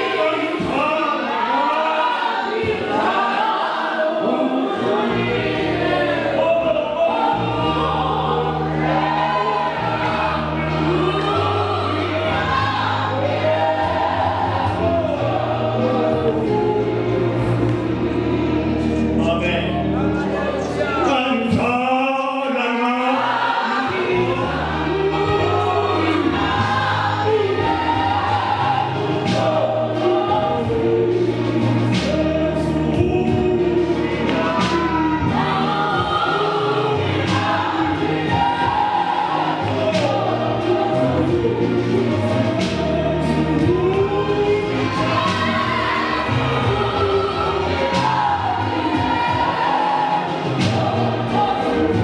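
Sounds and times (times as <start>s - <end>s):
congregation singing a hymn: 0.0s - 52.0s.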